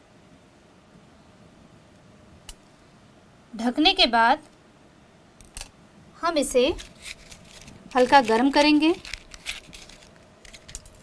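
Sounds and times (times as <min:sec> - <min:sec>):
faint room hiss: 0:00.0 - 0:11.0.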